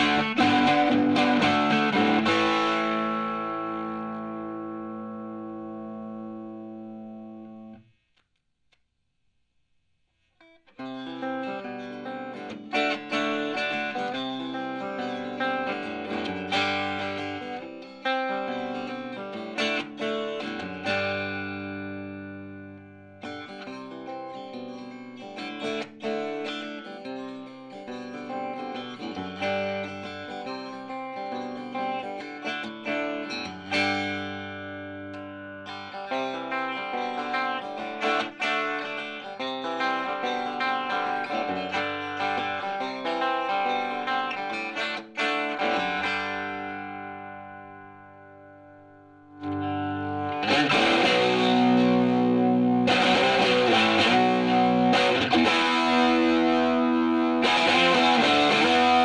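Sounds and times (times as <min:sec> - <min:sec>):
twangy electric guitar: 0:00.0 - 0:07.8, 0:10.8 - 0:24.4, 0:28.3 - 0:48.6, 0:49.3 - 0:59.0.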